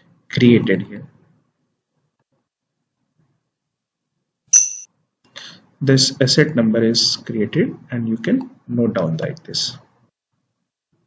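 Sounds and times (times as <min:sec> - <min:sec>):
computer notification chime: 0:04.6 - 0:04.9.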